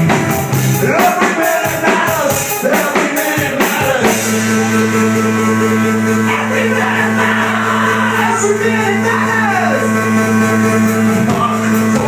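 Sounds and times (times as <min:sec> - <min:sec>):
live rock band playing: 0:00.0 - 0:12.0
sustained keyboard note: 0:04.1 - 0:12.0
shouted vocals: 0:06.2 - 0:10.2.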